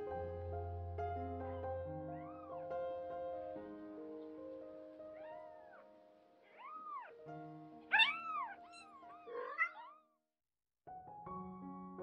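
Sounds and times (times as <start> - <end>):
kitten mewing: 5.2 - 7.2, 7.9 - 10.2.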